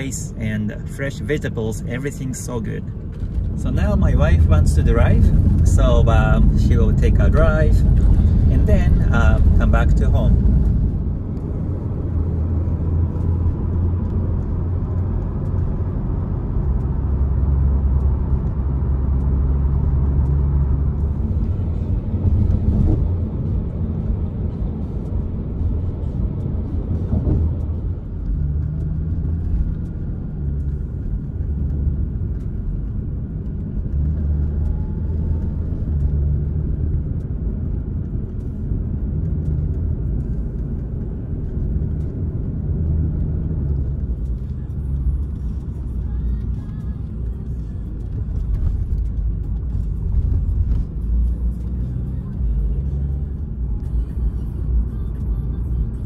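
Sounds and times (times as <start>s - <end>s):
road and engine noise in car: 0.0s - 56.0s.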